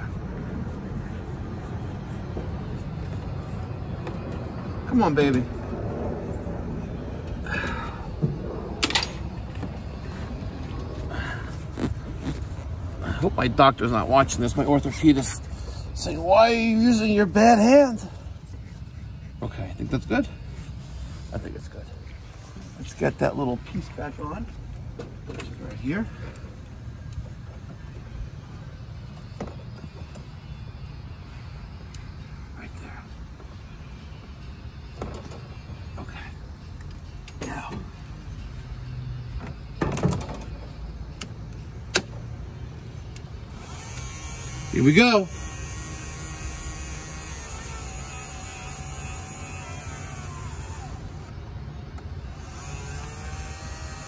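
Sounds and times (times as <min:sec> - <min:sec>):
steady low rumble: 0:00.0 - 0:16.6.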